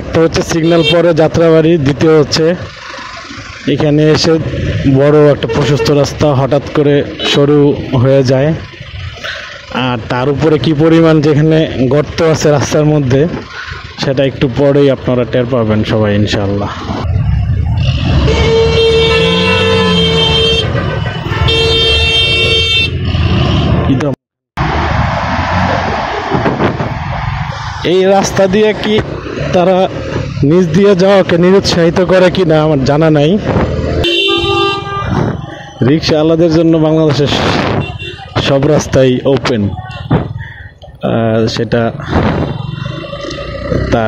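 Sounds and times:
motorcycle engine and road noise: 0:00.0 - 0:44.0
loud vehicle horn blaring: 0:00.6 - 0:01.1, 0:05.4 - 0:06.0, 0:18.0 - 0:23.8, 0:34.0 - 0:35.2, 0:37.7 - 0:38.4
motorcycle engine running: 0:42.5 - 0:44.0.

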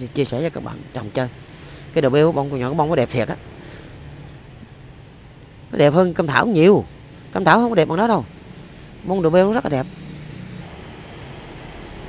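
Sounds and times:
distant city traffic hum: 0:00.0 - 0:12.0.

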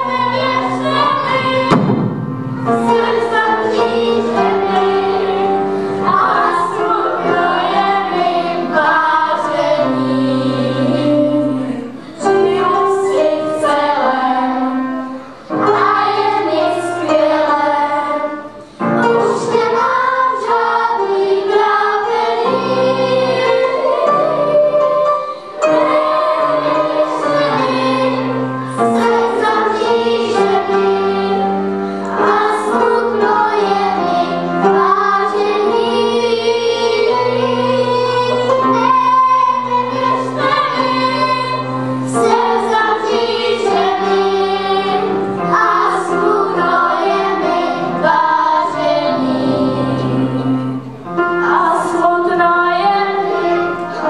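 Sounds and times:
girls choir singing: 0:00.0 - 0:54.0
piano accompaniment: 0:00.0 - 0:54.0.

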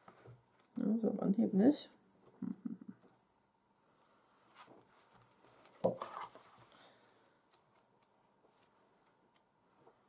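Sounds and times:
book pages rustling: 0:04.5 - 0:10.0.

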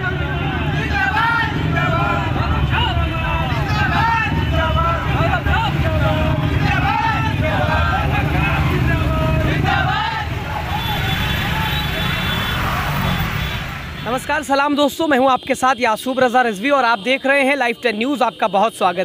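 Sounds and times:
crowd shouting and talking: 0:00.0 - 0:14.7
motorcycle engines rumbling: 0:00.0 - 0:19.0.

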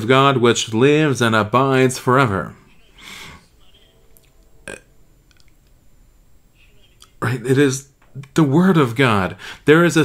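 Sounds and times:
man breathing: 0:02.9 - 0:03.6, 0:09.4 - 0:09.7.

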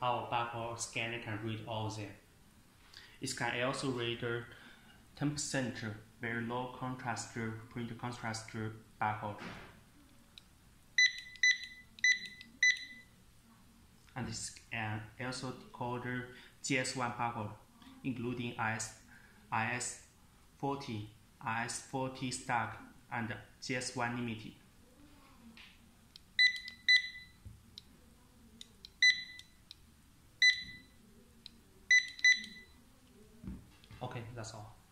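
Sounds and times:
barcode scanner beeps: 0:11.0 - 0:13.1, 0:26.4 - 0:27.4, 0:29.0 - 0:29.6, 0:30.4 - 0:31.0, 0:31.9 - 0:32.8
scanner high beeps: 0:29.0 - 0:29.5, 0:30.4 - 0:31.0, 0:31.9 - 0:32.8.

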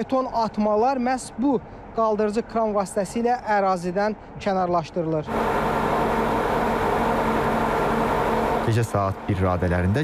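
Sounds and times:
heavy engine humming: 0:05.3 - 0:10.0
machine noise: 0:05.3 - 0:10.0.

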